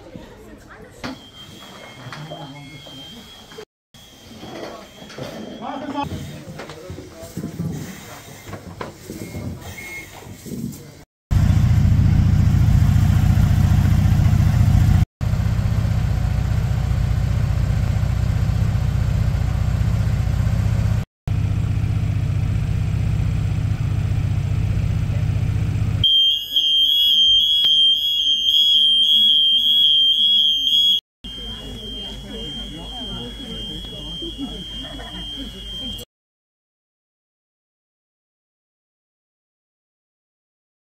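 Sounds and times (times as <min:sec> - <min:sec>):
high-pitched alarm tone: 0:01.1 - 0:06.2, 0:26.0 - 0:36.1
fire engine idling: 0:31.3 - 0:36.0.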